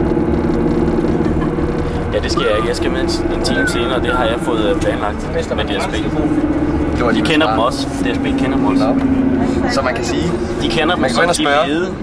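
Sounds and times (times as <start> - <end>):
coach engine and road noise: 0.0 - 12.0.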